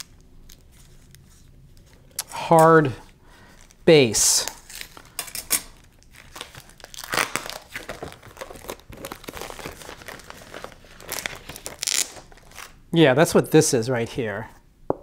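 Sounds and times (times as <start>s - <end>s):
cardboard and tape tearing: 6.2s - 12.7s.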